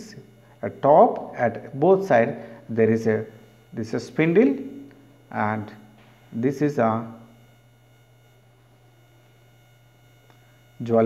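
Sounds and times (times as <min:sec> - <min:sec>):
person speaking: 0:00.0 - 0:07.2
faint electrical hum: 0:00.0 - 0:11.0.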